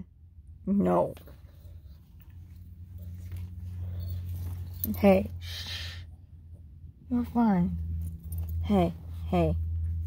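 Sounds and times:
car low rumble: 0.1 - 10.0.

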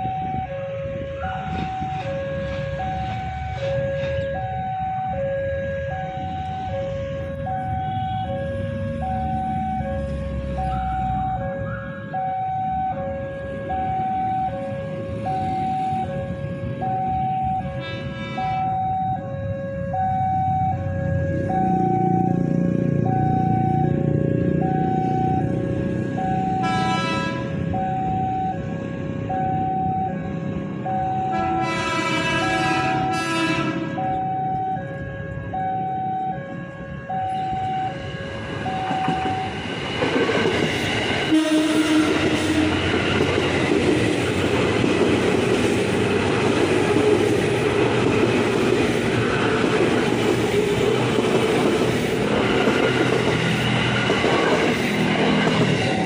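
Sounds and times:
electric train passing on rails: 0.0 - 56.0
train horn: 0.5 - 4.6, 5.8 - 9.0, 17.4 - 18.8, 26.4 - 27.7, 31.2 - 34.2, 41.2 - 43.1.

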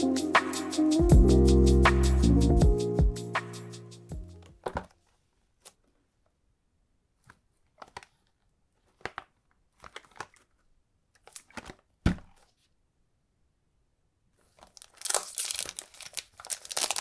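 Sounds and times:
background music: 0.0 - 4.5
cellophane crinkling: 7.7 - 11.9, 14.4 - 17.0.

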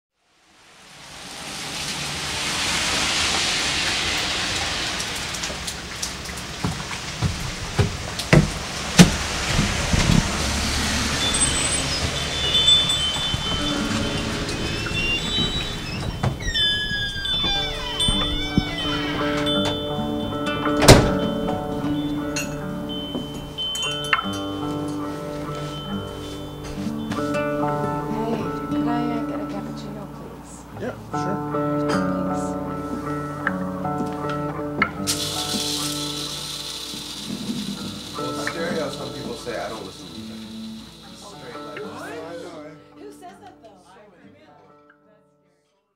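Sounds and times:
hissing noise: 0.3 - 29.5, 32.7 - 42.2
scattered knocks and clatter: 5.4 - 10.4
sustained musical notes: 9.2 - 43.0
chime-like tones: 10.3 - 30.2, 35.0 - 42.5.

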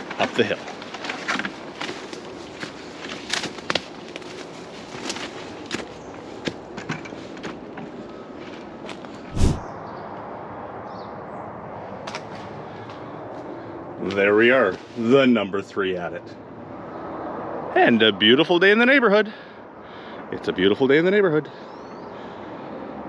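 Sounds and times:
footsteps on leaves and twigs: 0.0 - 9.6.

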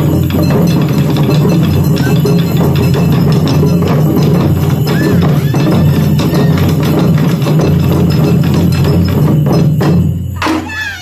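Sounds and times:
taiko drums: 0.0 - 11.0.

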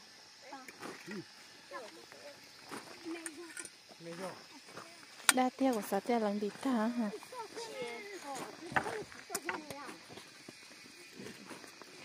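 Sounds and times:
high-pitched insect drone: 0.0 - 12.0
faint voices in conversation: 0.4 - 11.7.

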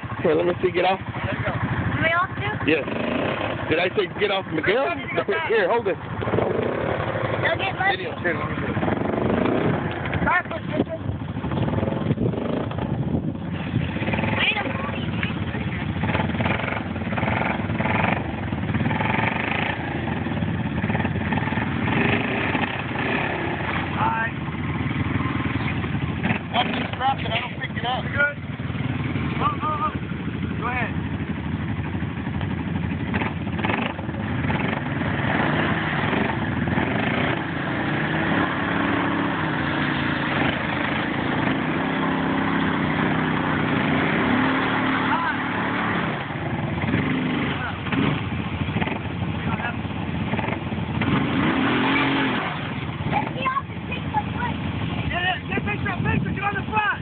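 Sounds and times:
atv engines running under load: 0.0 - 57.0.

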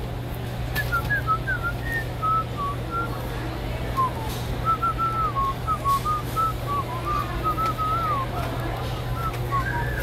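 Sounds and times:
person whistling: 0.8 - 3.1, 4.0 - 8.3, 9.2 - 10.0.

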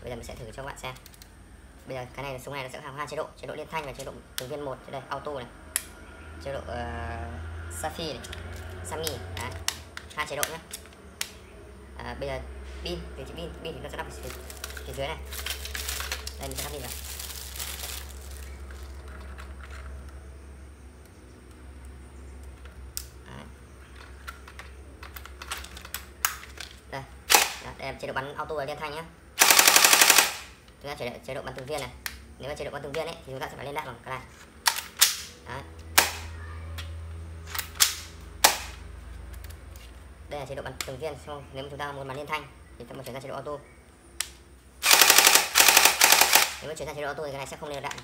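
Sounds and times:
small plastic clicks and rattles: 23.9 - 26.8
toy blaster plastic clicks: 27.3 - 27.7, 29.4 - 30.6, 44.8 - 46.7.

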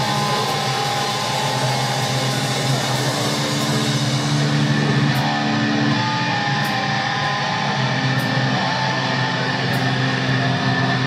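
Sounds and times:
distorted electric guitar chord: 0.0 - 11.0.

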